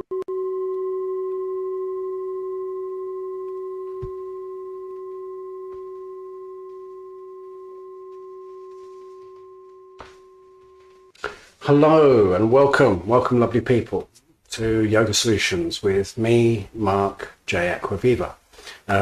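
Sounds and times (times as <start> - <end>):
long ringing tone: 0.0 - 11.2.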